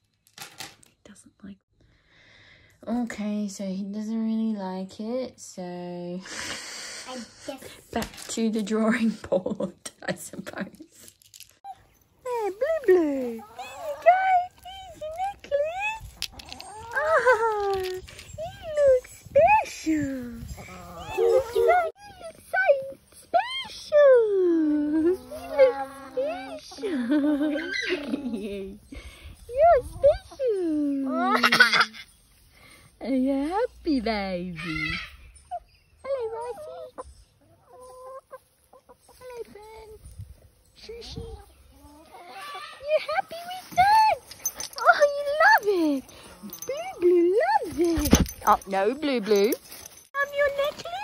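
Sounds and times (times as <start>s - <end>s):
hen calling and clucking: 12.4s - 19.8s, 20.4s - 23.7s, 25.0s - 32.4s, 33.5s - 39.8s, 40.4s - 47.8s.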